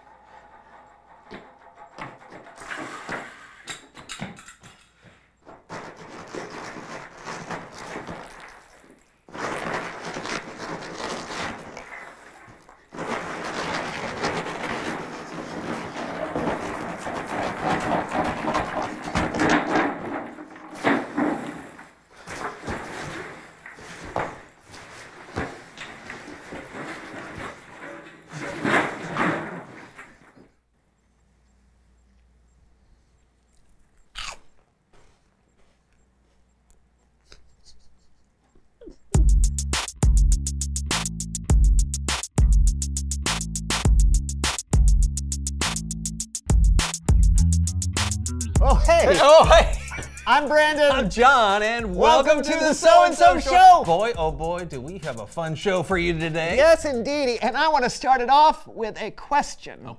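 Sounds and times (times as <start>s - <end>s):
cheese balls pattering on wood: 5.7s - 19.5s
chewing: 33.1s - 34.7s
crunchy snack bite: 34.0s - 34.7s.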